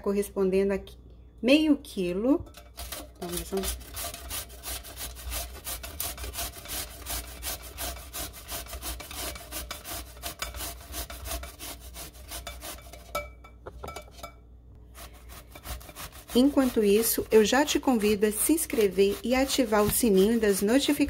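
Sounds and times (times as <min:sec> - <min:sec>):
zucchini rasping on a grater: 0:02.8 - 0:13.1, 0:14.9 - 0:21.0.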